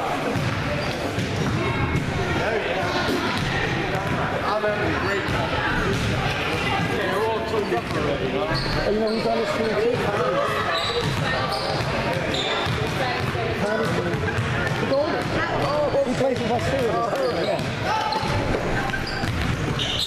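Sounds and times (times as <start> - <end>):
chatter of spectators: 0.0 - 20.0
basketballs bouncing on hardwood: 11.0 - 19.8.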